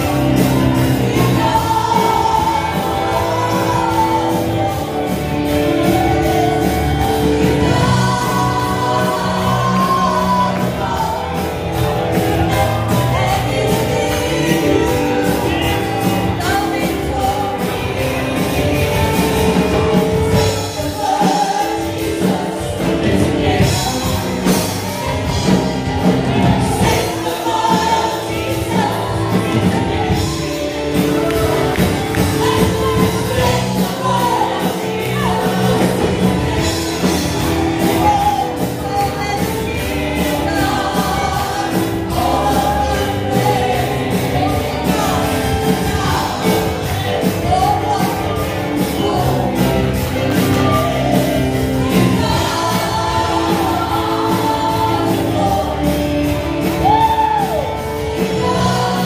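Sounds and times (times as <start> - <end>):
band playing: 0.0 - 59.0
women singing together: 0.0 - 59.0.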